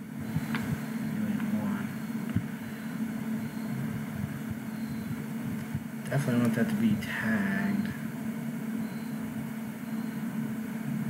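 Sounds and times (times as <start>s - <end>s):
low hum of running equipment: 0.0s - 11.0s.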